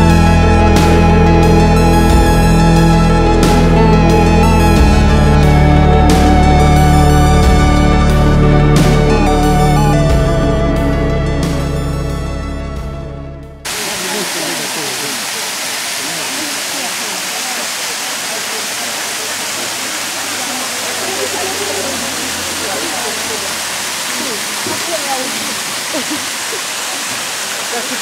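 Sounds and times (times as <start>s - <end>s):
background music: 0.0s - 13.7s
waterfall rushing: 13.7s - 28.0s.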